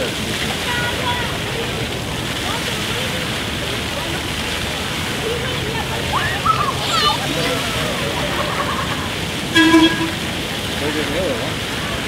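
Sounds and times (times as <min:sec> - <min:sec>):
fountain jets splashing: 0:00.0 - 0:12.0
horn toot: 0:09.5 - 0:10.4.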